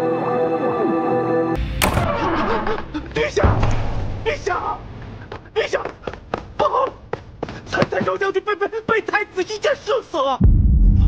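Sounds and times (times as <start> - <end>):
dramatic film score: 0.0 - 7.3
sharp crash: 1.6 - 4.7.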